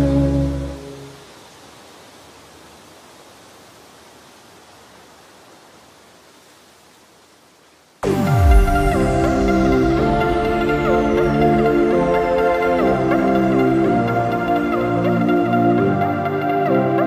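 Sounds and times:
background music: 0.0s - 1.2s, 8.0s - 17.0s
faint steady hiss: 0.0s - 17.0s.

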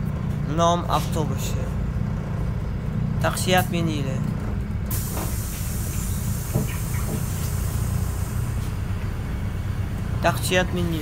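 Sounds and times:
bus engine and road rumble: 0.0s - 11.0s
loud air brake hiss: 4.9s - 8.8s.

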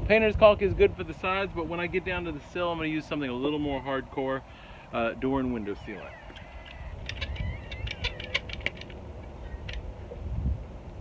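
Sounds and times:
wind rumble on microphone: 0.0s - 4.1s, 5.9s - 11.0s.

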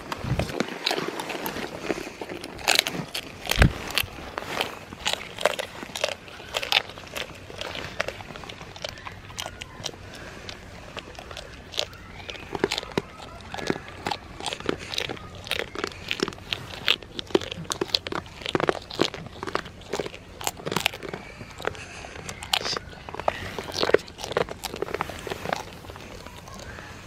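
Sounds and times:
goat crunching a treat: 0.0s - 27.0s.

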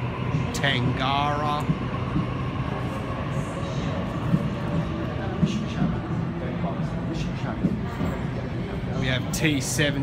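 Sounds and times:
electric train approaching: 0.0s - 10.0s.

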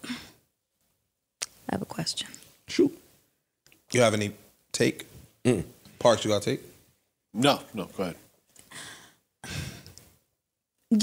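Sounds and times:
person breathing and sighing: 0.0s - 0.4s, 8.7s - 10.0s.

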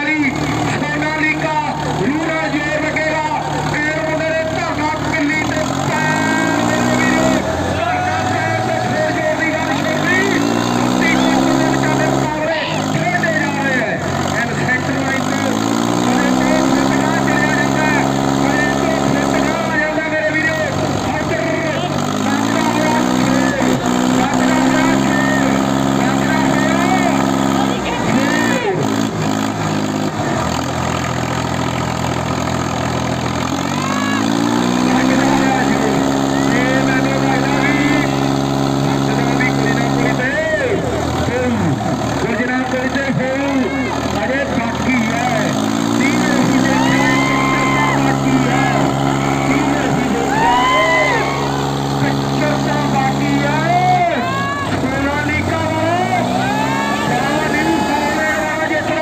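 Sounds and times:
tractor diesel engines revving: 0.0s - 59.0s.

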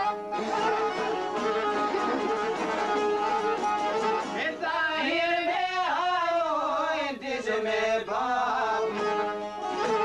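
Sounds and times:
instrumental accompaniment: 0.0s - 5.1s, 8.6s - 10.0s
person singing ornamented folk song: 0.0s - 10.0s.

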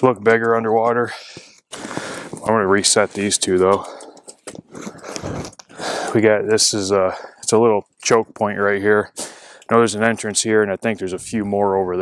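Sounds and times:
ice crunching: 1.7s - 2.5s.

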